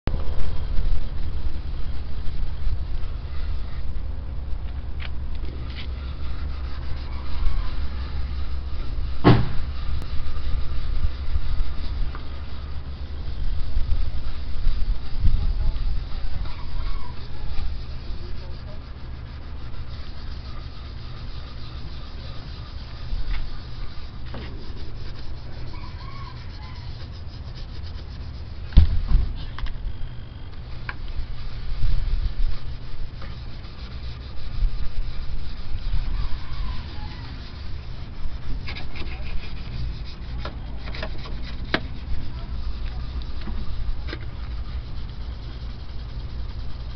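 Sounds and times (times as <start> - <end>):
low rumble: 0.0 - 46.9
hand scrubbing plastic lens: 4.5 - 9.0, 10.0 - 28.9, 30.5 - 46.9
short thump: 9.2 - 9.7, 28.7 - 29.5.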